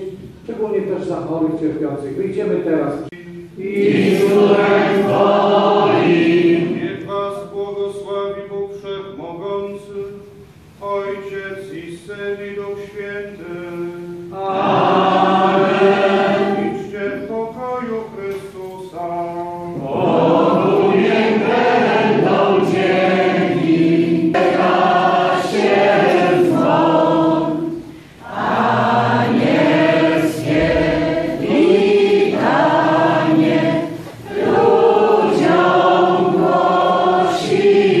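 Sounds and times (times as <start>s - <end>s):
congregation singing: 0.0s - 1.4s, 2.3s - 38.0s.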